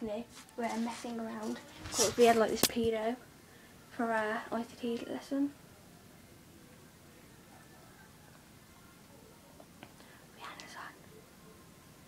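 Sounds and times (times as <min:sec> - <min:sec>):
girl whispering: 0:01.5 - 0:02.5, 0:10.3 - 0:11.0.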